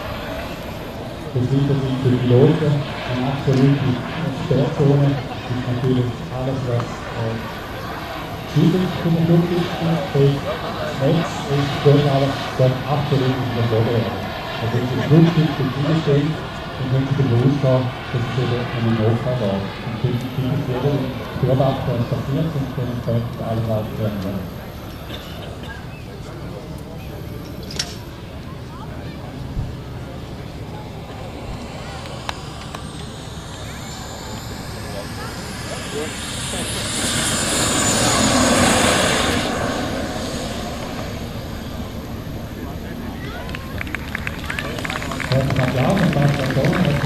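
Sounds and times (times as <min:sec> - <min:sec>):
model jet turbine whining: 0:00.0 - 0:47.0
steady background rush: 0:00.0 - 0:47.0
man talking: 0:01.3 - 0:07.5, 0:08.5 - 0:24.6, 0:32.9 - 0:39.7, 0:44.8 - 0:47.0.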